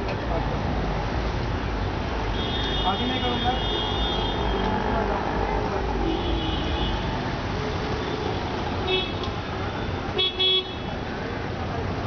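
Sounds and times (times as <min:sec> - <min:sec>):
street traffic: 0:00.0 - 0:12.0
vehicle horns tooting: 0:02.3 - 0:05.0, 0:10.1 - 0:11.0.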